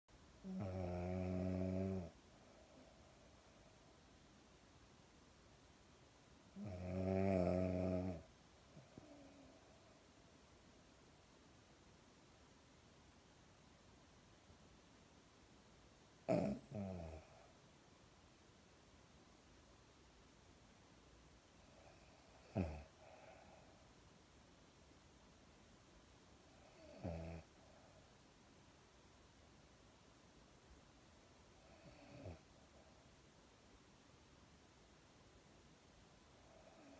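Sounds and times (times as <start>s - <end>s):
dog snoring: 0.4s - 3.7s, 6.5s - 9.9s, 16.2s - 17.5s, 21.6s - 23.6s, 26.5s - 27.8s, 31.6s - 32.5s, 36.4s - 36.9s.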